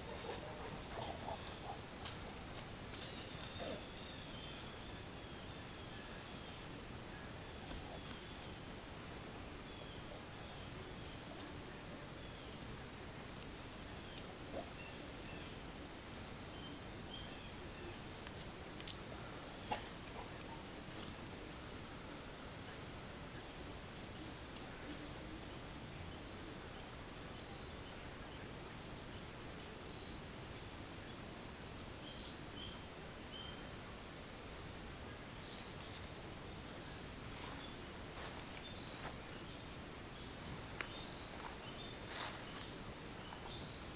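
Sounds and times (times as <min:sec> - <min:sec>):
insect chirps: 0:00.0 - 0:43.9
insects droning: 0:00.0 - 0:43.9.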